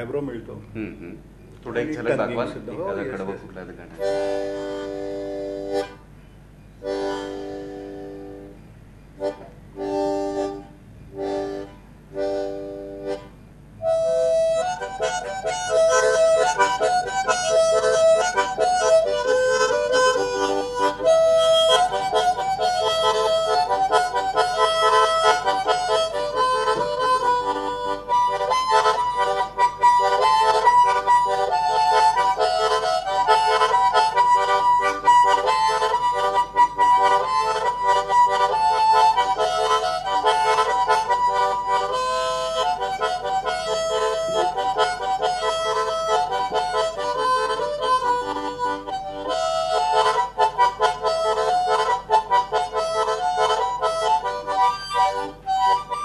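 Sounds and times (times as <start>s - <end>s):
harmonica playing: 1.9s - 6.2s, 6.8s - 56.0s.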